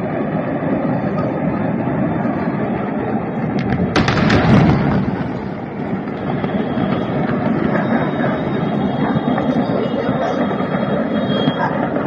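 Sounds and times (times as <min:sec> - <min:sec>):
explosion rumbling roar: 0:03.3 - 0:09.1.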